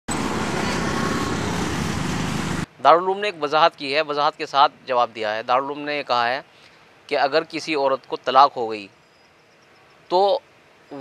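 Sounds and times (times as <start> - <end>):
road traffic: 0.1 - 11.0.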